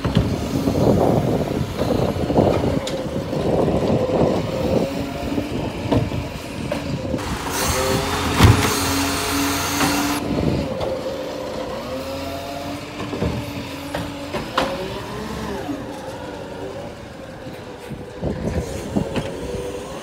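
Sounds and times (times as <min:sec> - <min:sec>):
garbage truck engine running: 0:00.0 - 0:20.0
hydraulic arm whine: 0:00.0 - 0:20.0
heavy knocks of bin arm: 0:08.3 - 0:08.8.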